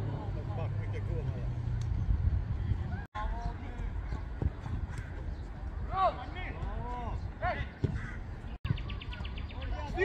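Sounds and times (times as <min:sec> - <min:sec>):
players shouting calls: 0:04.9 - 0:10.0.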